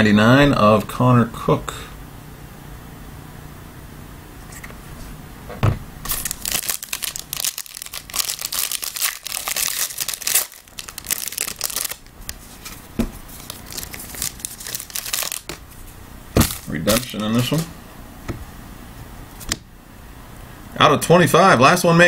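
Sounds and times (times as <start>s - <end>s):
foil wrapper tearing and crinkling: 6.1s - 15.6s, 16.4s - 17.7s
soft rustling of cards: 6.1s - 17.7s.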